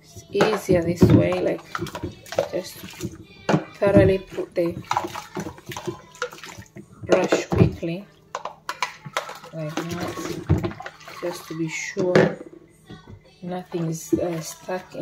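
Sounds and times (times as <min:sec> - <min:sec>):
water splashing in a bowl: 0:00.3 - 0:12.4, 0:13.5 - 0:15.0
plastic knocks and clicks: 0:00.4 - 0:09.3
bottle brush scrubbing: 0:09.1 - 0:11.8.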